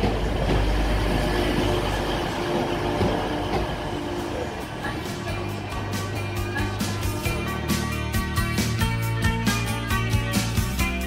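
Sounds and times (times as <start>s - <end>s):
wheel and rail noise: 0.0s - 10.7s
train engine drone: 0.0s - 11.0s.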